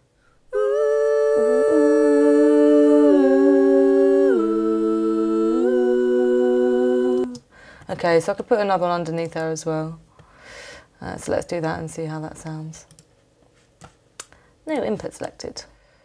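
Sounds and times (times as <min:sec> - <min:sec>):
woman singing in harmony: 0:00.5 - 0:07.5.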